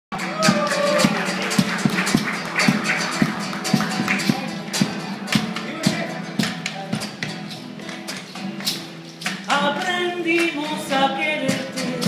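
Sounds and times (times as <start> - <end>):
acoustic guitar: 0.1 - 12.0
hand percussion: 0.2 - 12.0.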